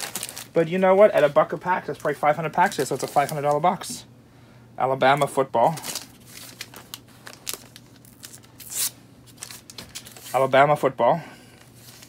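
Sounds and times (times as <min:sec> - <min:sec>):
plastic shrink-wrap crinkling: 0:00.0 - 0:03.9, 0:05.6 - 0:10.4.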